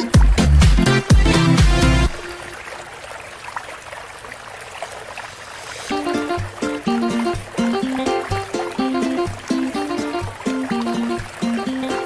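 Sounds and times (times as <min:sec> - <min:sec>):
background music with steady beat: 0:00.0 - 0:02.4, 0:05.9 - 0:12.0
water splashing and lapping: 0:00.0 - 0:12.0.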